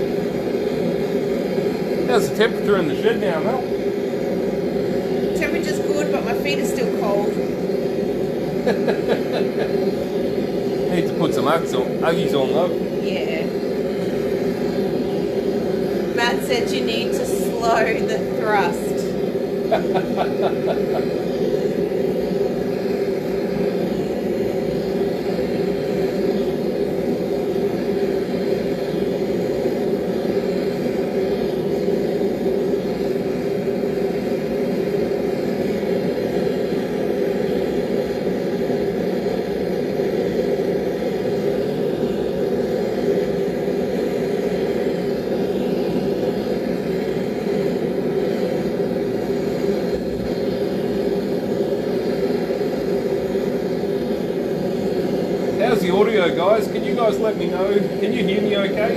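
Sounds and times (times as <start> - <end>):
forge running loudly: 0.0 - 58.9.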